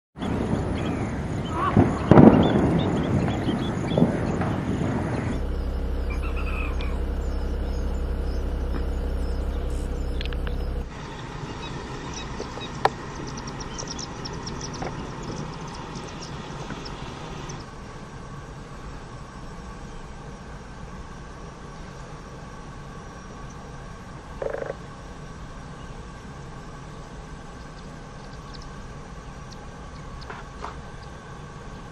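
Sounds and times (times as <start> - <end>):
small birds chirping: 0.2 - 17.7, 23.0 - 23.8, 25.7 - 31.9
steady low rumble: 0.2 - 31.9.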